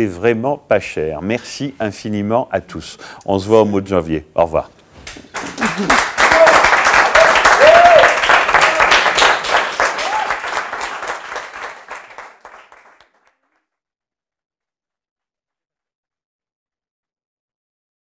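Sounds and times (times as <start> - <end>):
small group applauding: 5.3 - 13.6
voices over clapping: 5.4 - 12.2.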